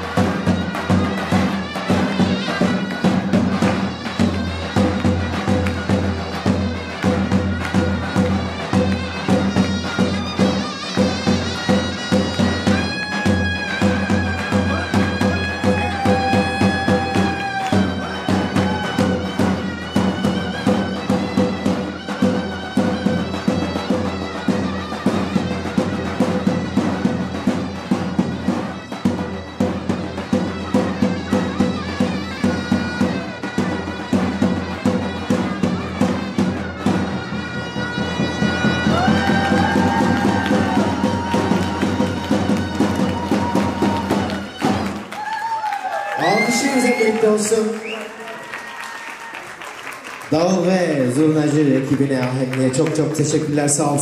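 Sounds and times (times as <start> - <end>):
large drum beating fast: 0.0 - 45.0
shrill reed pipe melody: 0.0 - 45.0.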